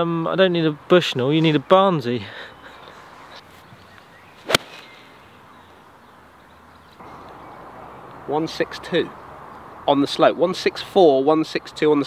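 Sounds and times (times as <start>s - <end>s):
faint outdoor background: 0.0s - 12.0s
golf club striking ball: 4.4s - 5.0s.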